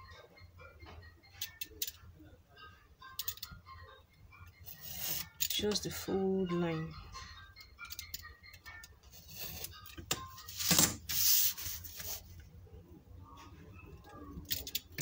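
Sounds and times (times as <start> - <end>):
paper rubbing on cutting mat: 10.5 - 12.3
paper rustle: 10.5 - 12.3
utility knife scraping paper: 10.7 - 12.2.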